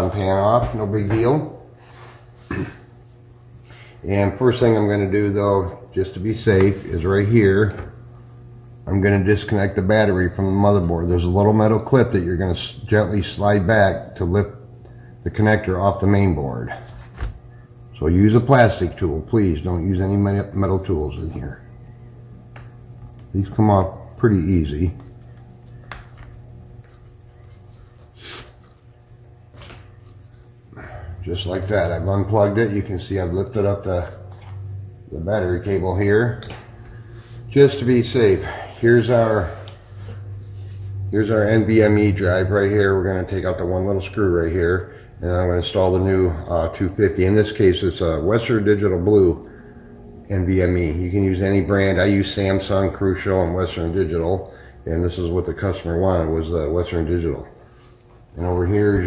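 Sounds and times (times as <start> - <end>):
low hum: 16.5 - 56.3.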